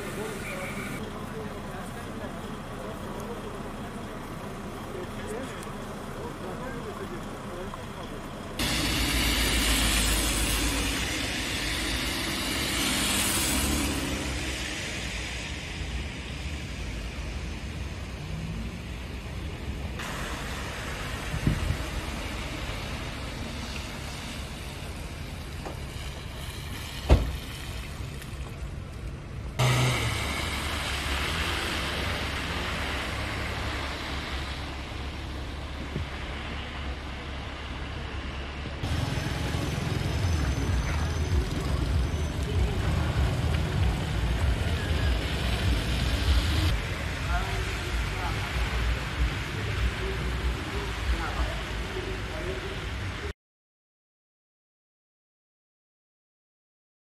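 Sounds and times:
traffic on slushy streets: 0.0 - 53.4.

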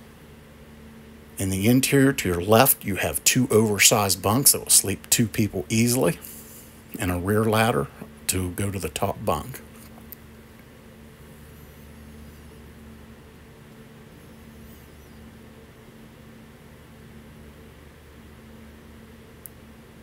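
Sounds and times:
room tone hum and hiss: 0.0 - 20.0
faint sharp click: 19.4 - 19.6.

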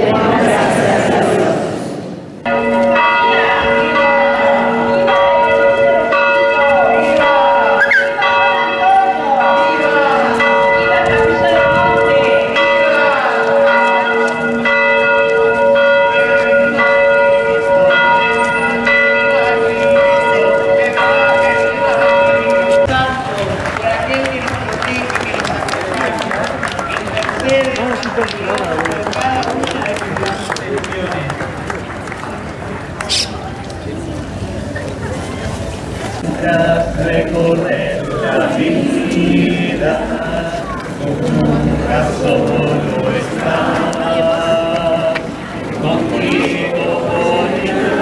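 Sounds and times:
faint voices: 0.0 - 48.0
church bells pealing: 2.4 - 31.8, 35.2 - 48.0.

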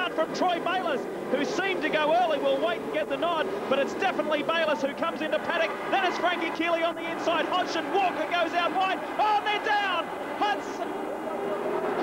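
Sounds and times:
commentator shouting: 0.0 - 11.1
high-revving motorbike engines: 0.0 - 12.0.

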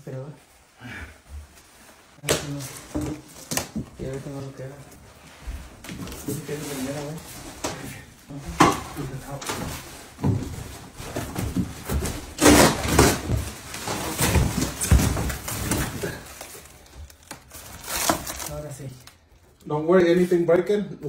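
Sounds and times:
plastic wrap crinkling: 9.0 - 19.6.

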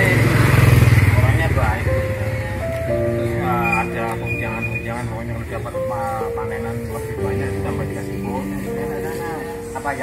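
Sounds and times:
motorcycle engine passing: 0.0 - 6.2.

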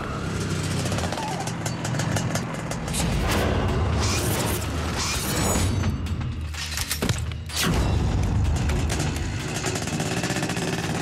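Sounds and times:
motorbike engine running: 0.0 - 3.0, 8.1 - 11.0.

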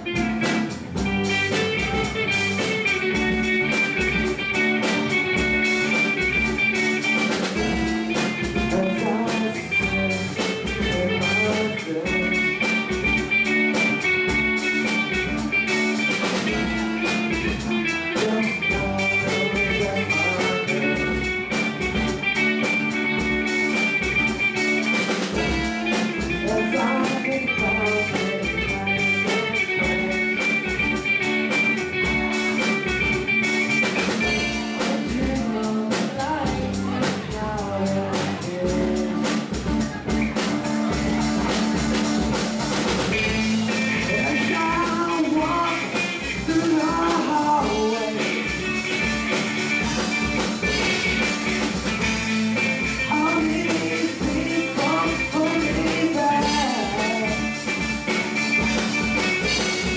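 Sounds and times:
drum kit beat: 0.0 - 59.9
electric guitars: 0.0 - 59.9.

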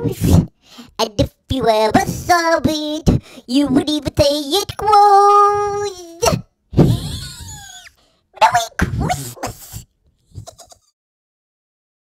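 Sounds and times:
whinnying yelping laugh: 6.8 - 8.6, 10.3 - 10.9
little yips: 6.8 - 10.7.

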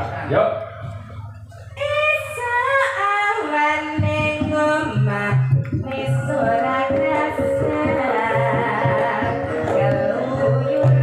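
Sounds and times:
woman singing through a pa: 1.8 - 11.0.

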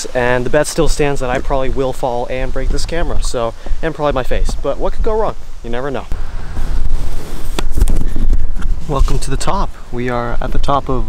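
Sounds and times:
wind noise: 0.0 - 11.0
camera handling rumble: 6.6 - 9.2.

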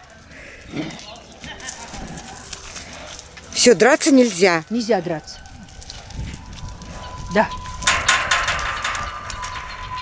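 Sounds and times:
lion cubs scuffling: 0.0 - 7.8
low rumble: 4.6 - 10.0.

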